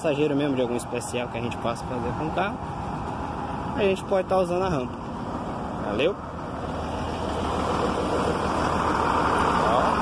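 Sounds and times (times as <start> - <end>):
engine running steadily: 0.0 - 10.0.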